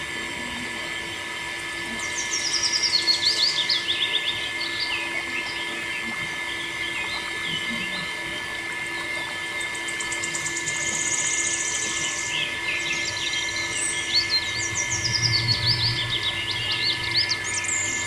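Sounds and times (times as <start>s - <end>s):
electric water pump hum: 0.0s - 18.0s
birds chirping and singing: 1.9s - 18.0s
bird trill: 2.0s - 8.1s, 9.7s - 18.0s.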